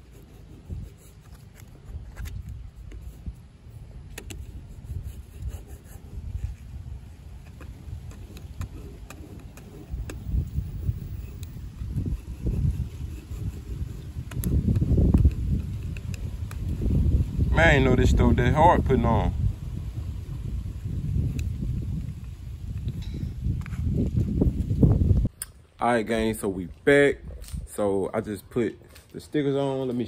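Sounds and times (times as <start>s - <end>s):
wind rumble on microphone: 0.0s - 28.1s
plastic card scraping on glass: 7.4s - 16.6s.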